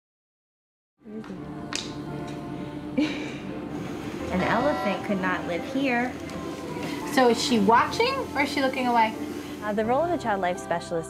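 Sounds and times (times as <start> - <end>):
background music: 1.0 - 11.0.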